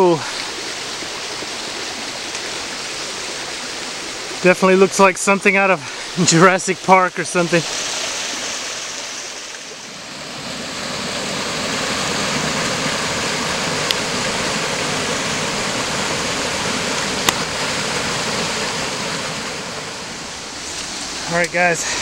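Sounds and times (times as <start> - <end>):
creek cascade rushing: 0.0 - 22.0.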